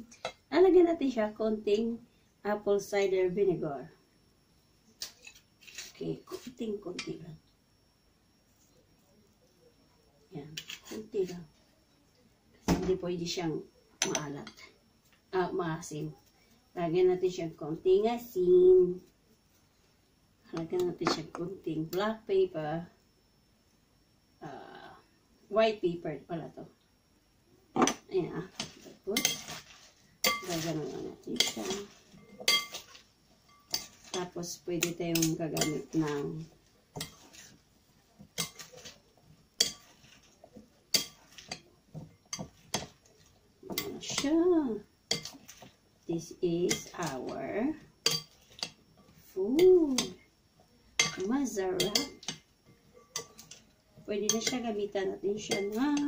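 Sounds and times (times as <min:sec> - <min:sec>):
utensil clinking against a dish: 0:28.6 - 0:36.2, 0:36.9 - 0:37.6, 0:38.2 - 0:39.0, 0:39.6 - 0:43.0, 0:45.1 - 0:45.8, 0:46.7 - 0:47.4, 0:48.0 - 0:48.8, 0:51.0 - 0:54.8, 0:55.4 - 0:56.0.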